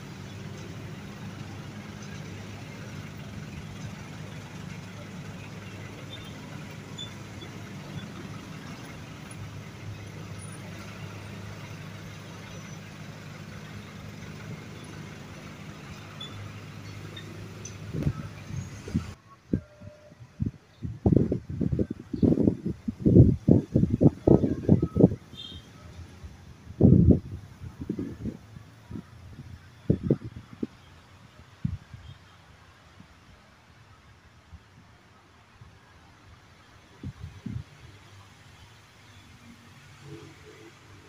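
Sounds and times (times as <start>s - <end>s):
standing train humming: 0.0s - 19.8s
outdoor noise: 0.0s - 41.0s
wind buffeting microphone: 17.0s - 25.4s, 26.6s - 30.8s, 37.0s - 37.9s.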